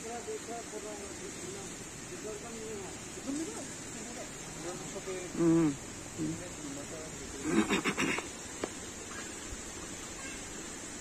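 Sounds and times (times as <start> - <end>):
monkey pulsed call: 10.1 - 10.6.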